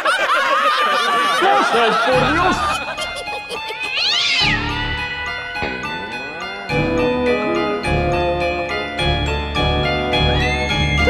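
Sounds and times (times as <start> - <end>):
background music: 0.8 - 11.0
cat meowing: 3.6 - 4.9.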